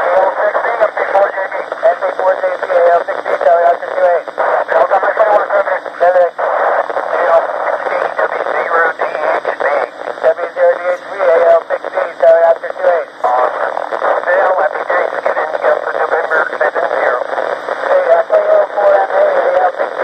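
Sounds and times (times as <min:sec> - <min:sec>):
radio crackles: 0:00.0 - 0:20.0
radio hiss: 0:00.0 - 0:20.0
radio voices through speaker: 0:00.0 - 0:20.0.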